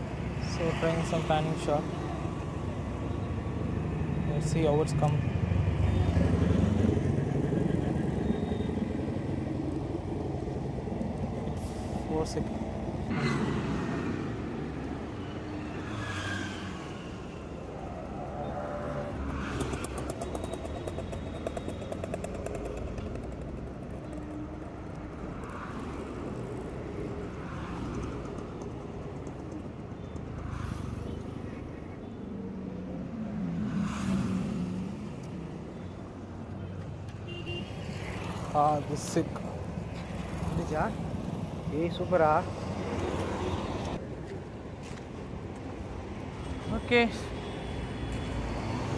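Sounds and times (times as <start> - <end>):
road traffic: 0.0 - 48.9
vehicles passing close: 0.0 - 48.9.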